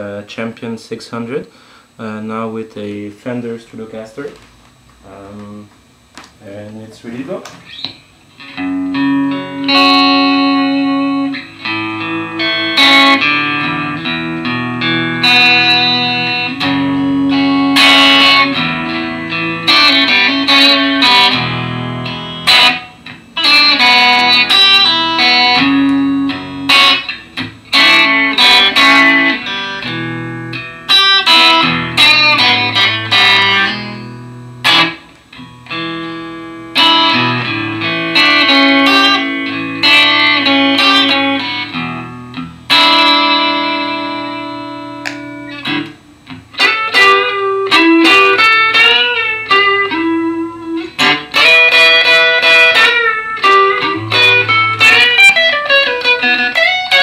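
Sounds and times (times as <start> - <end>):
electric guitar playing: 3.5 - 57.0.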